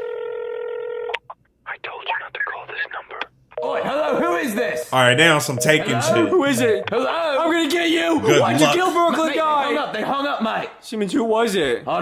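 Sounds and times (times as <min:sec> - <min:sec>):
telephone ringing tone: 0:00.0 - 0:01.2
person speaking: 0:01.7 - 0:09.2.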